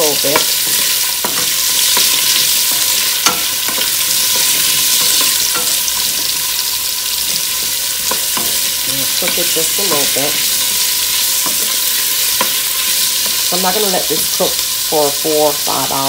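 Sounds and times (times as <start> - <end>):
vegetables sizzling in oil: 0.0 - 16.0
wooden spoon scraping a pot: 0.1 - 13.5.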